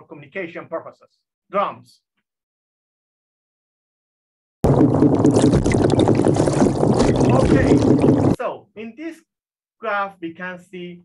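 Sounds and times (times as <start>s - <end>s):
fish drumming and grunting underwater: 4.6s - 8.4s.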